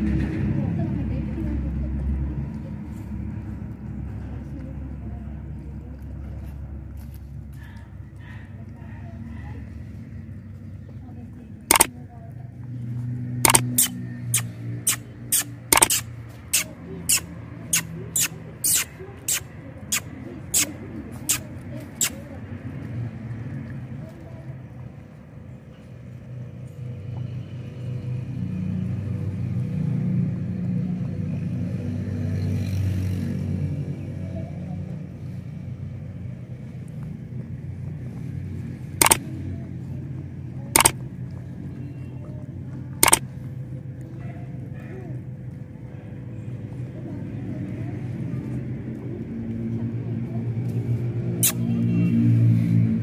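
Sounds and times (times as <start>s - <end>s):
low engine rumble: 0.0s - 53.0s.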